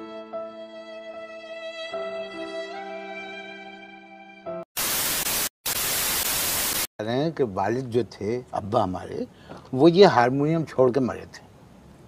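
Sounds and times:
sad violin music: 0:00.0 - 0:04.6
tv static hiss: 0:04.8 - 0:06.9.

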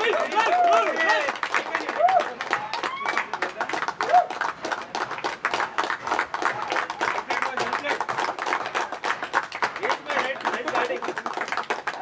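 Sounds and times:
people clapping: 0:00.0 - 0:12.0.

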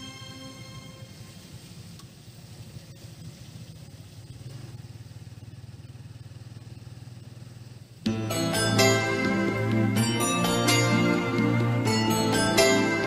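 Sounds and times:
vehicle engine running: 0:01.0 - 0:13.0.

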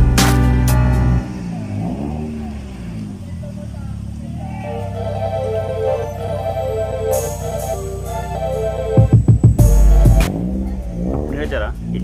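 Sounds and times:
traffic rumble: 0:00.0 - 0:12.0
indistinct voices: 0:02.0 - 0:09.2.

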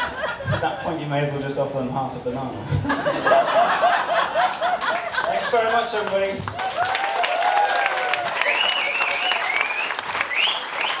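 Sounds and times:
rhythmic laugh: 0:00.0 - 0:00.9, 0:02.7 - 0:05.8
people laughing: 0:00.0 - 0:01.2, 0:02.6 - 0:06.3.

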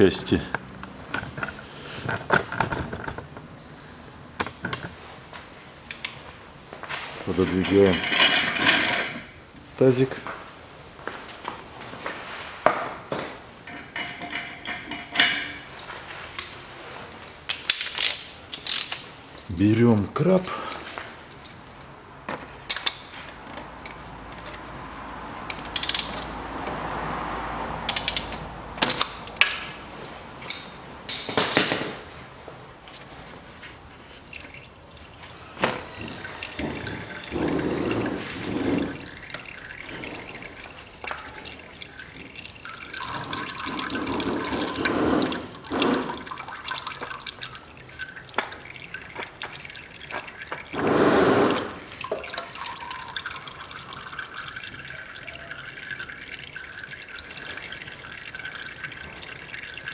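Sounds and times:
metal wrench clicks and knocks: 0:25.5 - 0:26.4, 0:27.9 - 0:31.4
oil dripping into a basin: 0:33.9 - 0:59.9.

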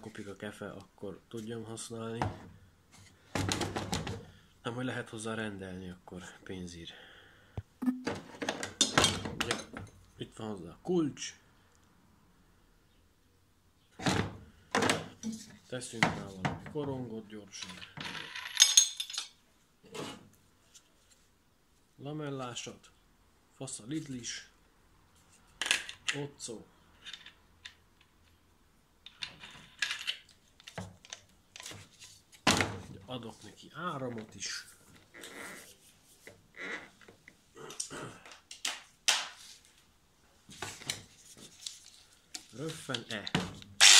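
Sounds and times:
metal parts clicking and clinking: 0:17.8 - 0:19.4.

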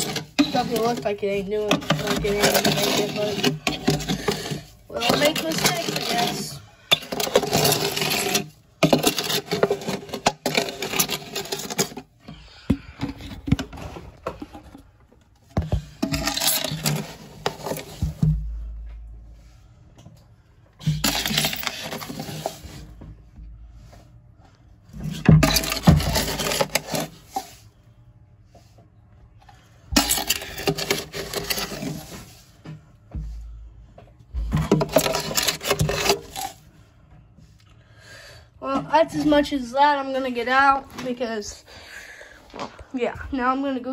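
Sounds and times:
scraping substrate in glass tank: 0:00.0 - 0:12.1, 0:30.0 - 0:32.5, 0:34.8 - 0:36.6.

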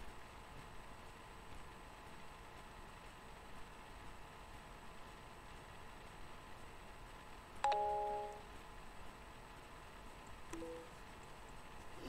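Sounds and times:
electronic chime: 0:07.7 - 0:08.4
soft rising two-note tone: 0:10.6 - 0:10.9.

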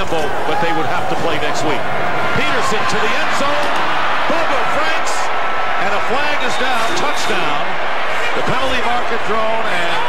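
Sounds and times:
broadcast voices talking: 0:00.0 - 0:10.0
stadium crowd noise: 0:00.0 - 0:10.0.

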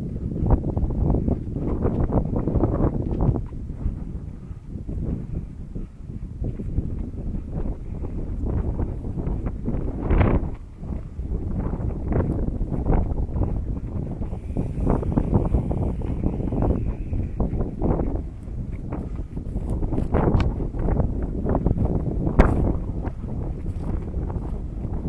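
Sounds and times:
wind buffeting microphone: 0:00.0 - 0:25.0.

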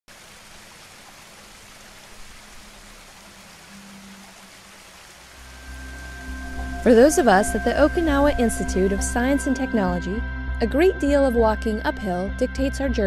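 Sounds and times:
running water hissing: 0:00.1 - 0:09.9
low music tones: 0:05.3 - 0:13.0.

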